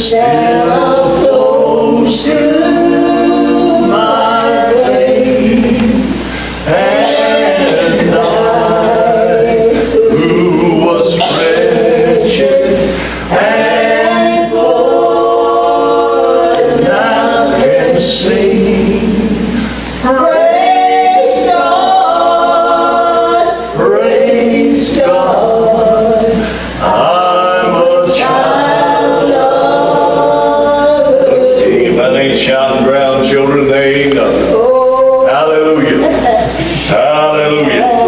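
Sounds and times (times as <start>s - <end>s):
two women singing gospel: 0.0s - 38.0s.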